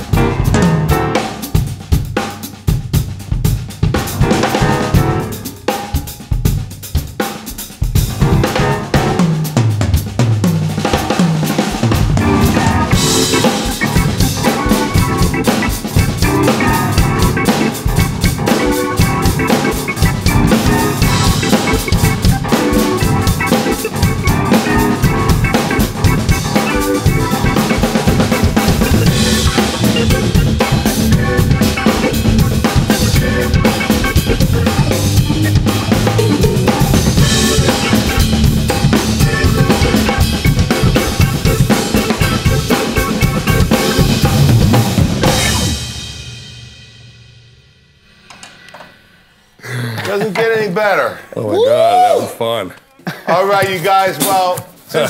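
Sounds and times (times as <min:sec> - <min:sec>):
keyboard chords: 0:00.0 - 0:01.9, 0:03.9 - 0:06.4, 0:08.1 - 0:09.8, 0:11.1 - 0:46.7
drum kit playing a groove: 0:00.0 - 0:47.7, 0:50.1 - 0:51.1, 0:53.3 - 0:55.0.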